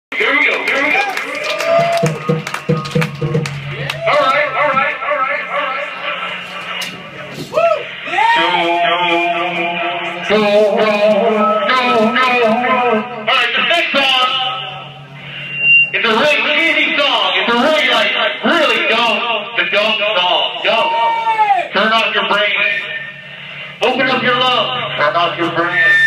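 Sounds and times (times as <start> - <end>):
steady low hum: 0.1 - 26.0
drum strokes: 1.8 - 4.9
piercing high tone: 3.6 - 19.5, 22.4 - 26.0.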